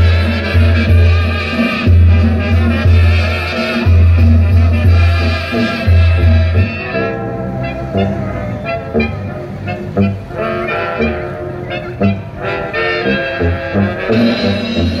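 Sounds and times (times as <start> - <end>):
latin dance music with brass: 0.0 - 15.0.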